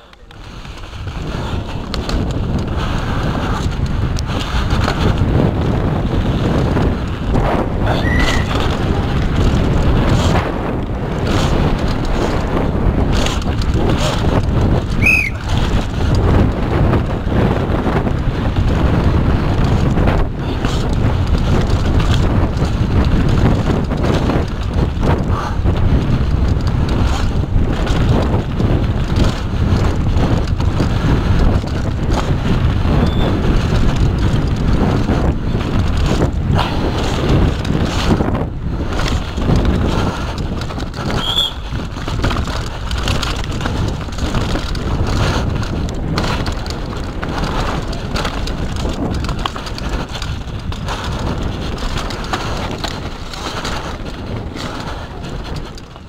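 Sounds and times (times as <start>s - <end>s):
mountain bike rattling over rough trail: 0.0s - 56.0s
wind buffeting microphone: 0.0s - 56.0s.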